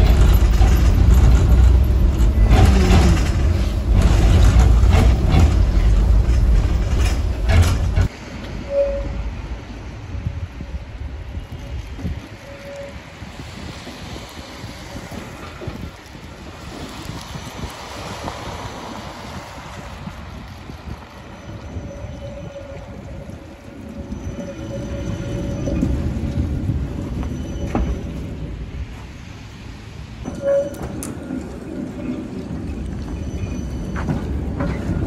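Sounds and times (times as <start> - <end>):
tram wheels rumbling: 0.0 - 35.0.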